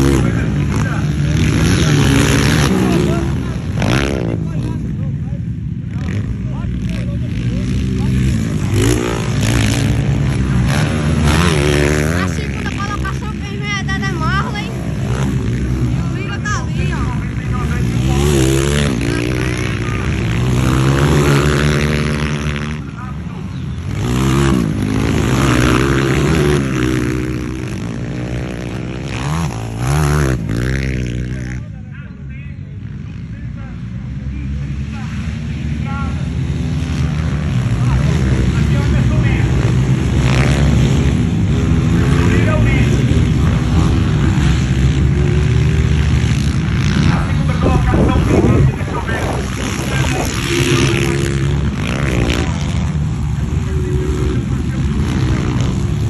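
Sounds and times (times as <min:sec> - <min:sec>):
motocross bike engines revving: 0:00.0 - 0:56.0.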